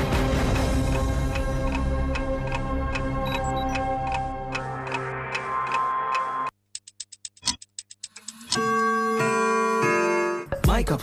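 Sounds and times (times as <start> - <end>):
music with a beat: 0.0 - 6.5
rapid clock ticks: 0.1 - 8.6.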